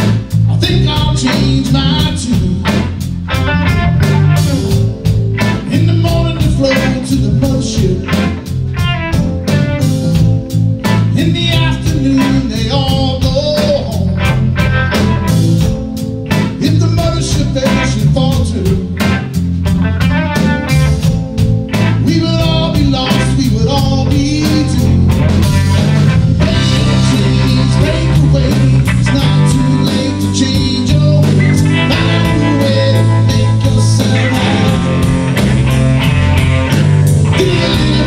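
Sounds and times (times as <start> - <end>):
man singing: 0.0 - 3.0, 5.4 - 8.6, 10.8 - 14.4, 16.5 - 19.3, 21.8 - 25.6, 26.4 - 35.1, 37.2 - 38.0
bass guitar: 0.0 - 38.0
drum kit beat: 0.0 - 38.0
electric guitar: 0.0 - 38.0.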